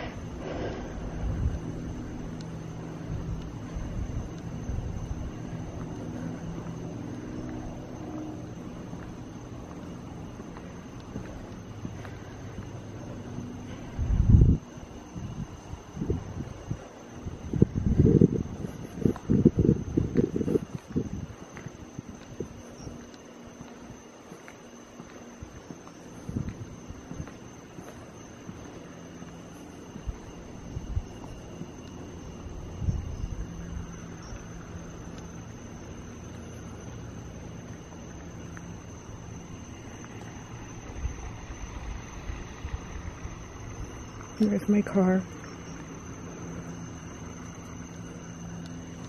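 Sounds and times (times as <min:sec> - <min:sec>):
wind buffeting microphone: 0:00.0 - 0:24.2, 0:25.4 - 0:28.8, 0:29.4 - 0:37.8, 0:38.8 - 0:44.4
steady low hum: 0:00.0 - 0:49.0.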